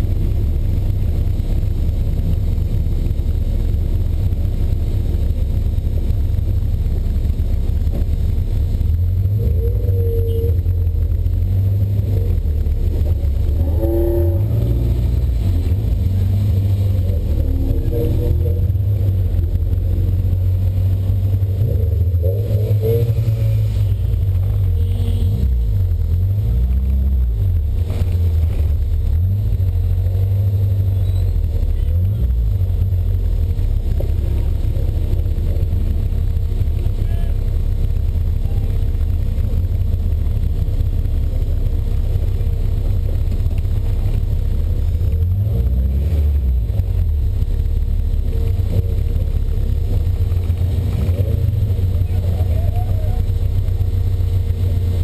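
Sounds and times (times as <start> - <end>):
car engine droning under load: 0.0 - 55.0.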